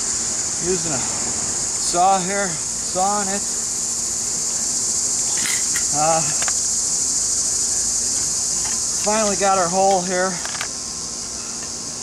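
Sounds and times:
insect chorus drone: 0.0 - 12.0.

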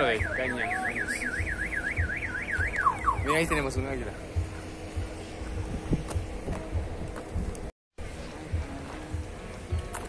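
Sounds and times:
vehicle alarm siren warbling: 0.0 - 3.6.

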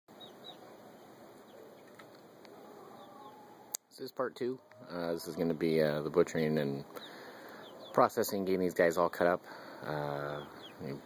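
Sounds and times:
chicks chirping: 0.1 - 3.8, 4.6 - 11.0
low background hum: 0.1 - 11.0.

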